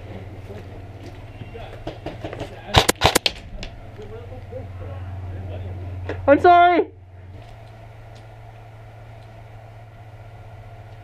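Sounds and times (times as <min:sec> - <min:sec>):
steady low rumble: 0:00.0 - 0:11.0
airsoft rifle shots: 0:02.7 - 0:03.4.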